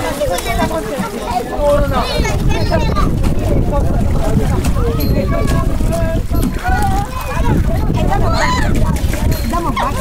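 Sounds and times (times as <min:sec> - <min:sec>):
water splashing in a pool: 0:00.0 - 0:10.0
wind rumble on microphone: 0:00.0 - 0:10.0
children calling out: 0:04.8 - 0:10.0.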